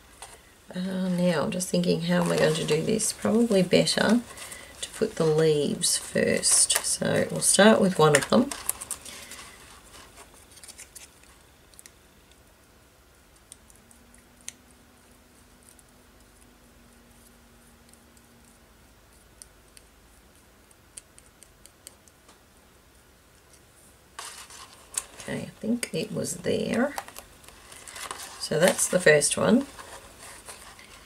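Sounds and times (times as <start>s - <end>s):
paper and paintbrush ticks: 17.2s - 22.2s.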